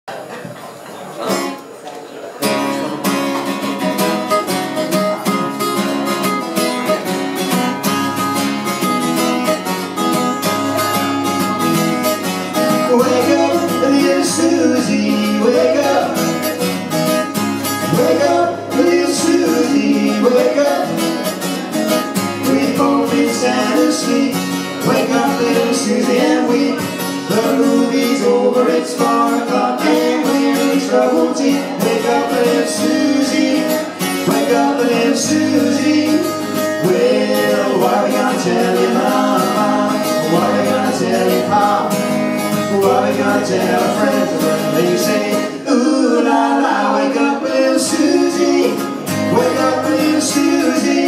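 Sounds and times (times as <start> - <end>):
acoustic guitar strumming: 2.4 - 51.0.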